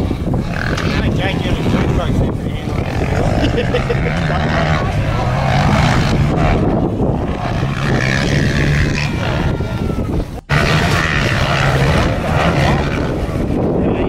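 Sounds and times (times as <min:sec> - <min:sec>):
dirt bike engines revving: 0:00.0 - 0:14.0.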